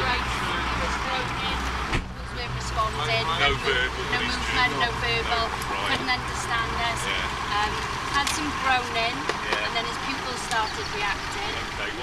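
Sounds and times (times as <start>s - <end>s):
indistinct voices: 0.0s - 12.0s
vehicle engine idling: 0.0s - 12.0s.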